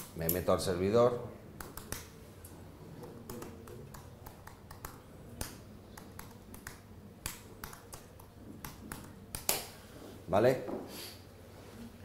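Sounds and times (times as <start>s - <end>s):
laptop keyboard typing: 1.6s - 2.1s, 3.0s - 9.6s.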